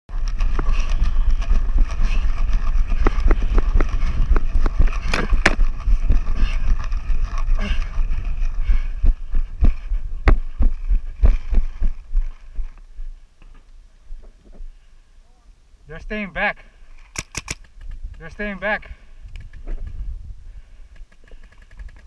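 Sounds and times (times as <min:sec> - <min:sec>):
gear knocking and clattering: 0:00.1 - 0:12.4
running footsteps on dirt: 0:00.1 - 0:14.8
wind rumble: 0:00.1 - 0:14.9, 0:17.6 - 0:22.0
camera handling noise: 0:17.0 - 0:18.2.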